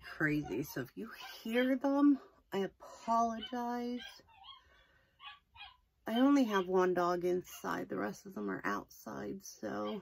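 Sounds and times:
dog yelping: 3.4s - 5.9s.

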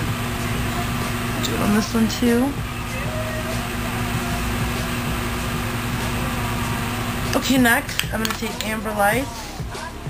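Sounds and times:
even hiss: 0.0s - 10.0s
low hum: 0.0s - 10.0s.

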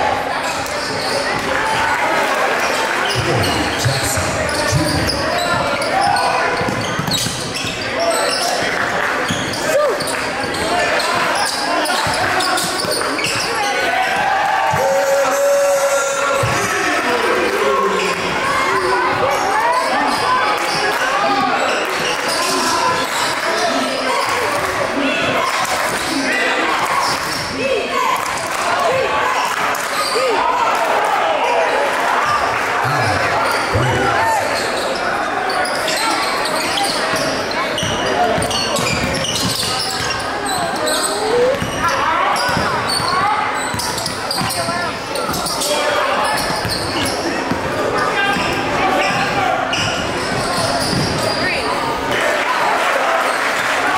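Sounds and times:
voices echoing in hall: 0.0s - 53.9s.

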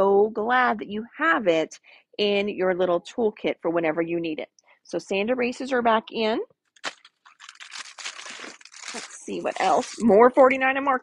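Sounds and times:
packaging crinkling: 6.8s - 10.2s.

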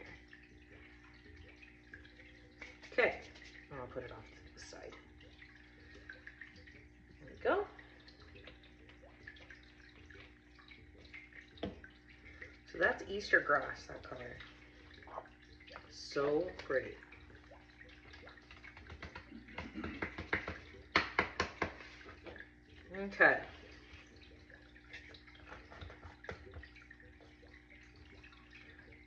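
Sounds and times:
faint steady hum: 0.0s - 29.0s
glitter crackles and taps: 17.6s - 22.5s.

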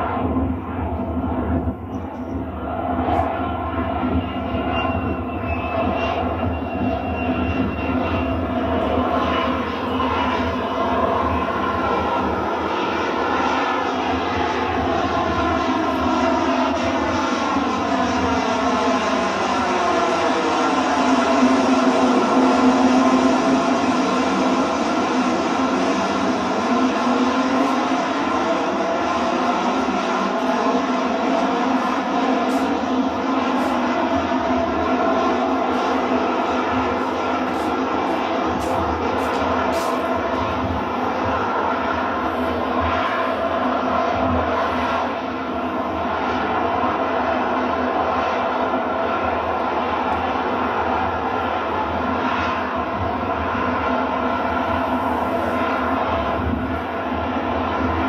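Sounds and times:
jet engine running: 0.0s - 58.0s.

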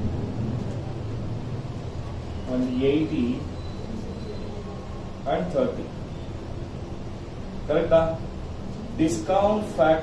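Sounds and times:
low room rumble: 0.0s - 10.0s.

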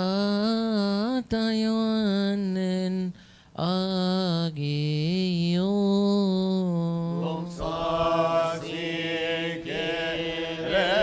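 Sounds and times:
solo voice chanting: 0.0s - 11.0s.

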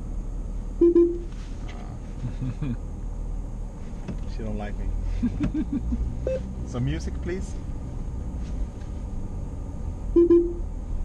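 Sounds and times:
electronic beeps: 0.8s - 1.3s, 10.2s - 10.6s
car cabin rumble: 3.7s - 9.2s.

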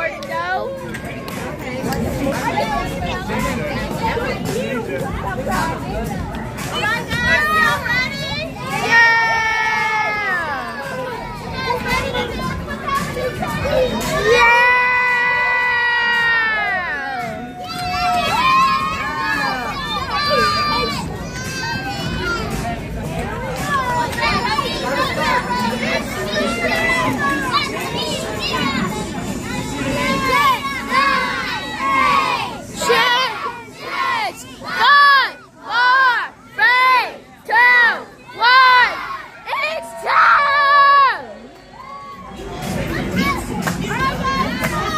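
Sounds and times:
children chattering and shouting: 0.0s - 44.9s.

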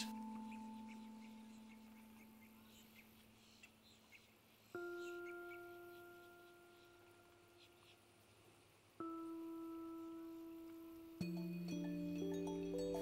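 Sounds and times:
ringing bell-like tones: 0.0s - 3.4s, 4.8s - 8.2s, 9.0s - 13.0s.

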